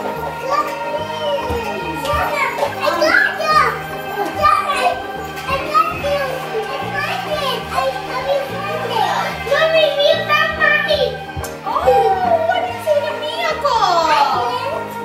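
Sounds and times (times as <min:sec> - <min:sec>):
young children calling and babbling: 0:00.0 - 0:15.0.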